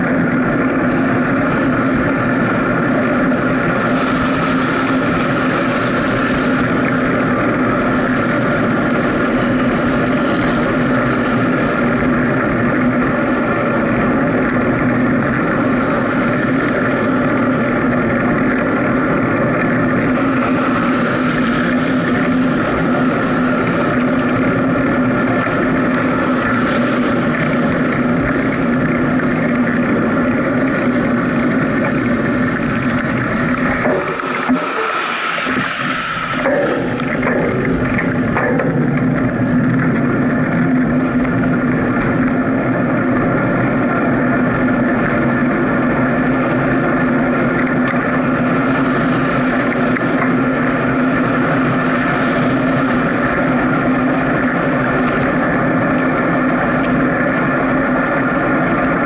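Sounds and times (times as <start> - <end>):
constant droning hum: 0.0 - 59.0
road and wind noise: 0.0 - 59.0
passing vehicle hiss: 33.1 - 37.6.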